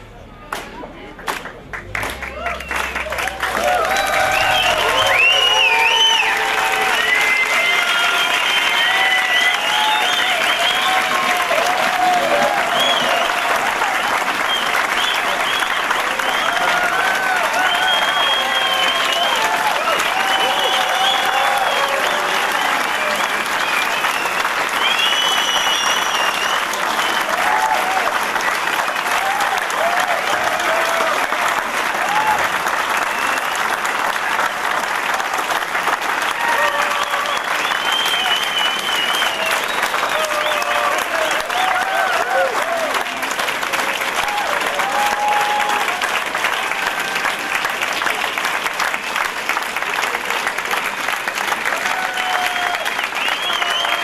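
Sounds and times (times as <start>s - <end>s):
audience applauding: 0.0s - 54.0s
people cheering: 0.0s - 54.0s.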